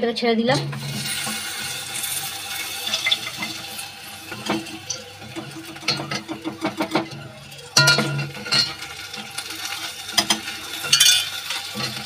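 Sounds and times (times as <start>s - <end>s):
spatula knocking against pot: 5.4s - 7.2s.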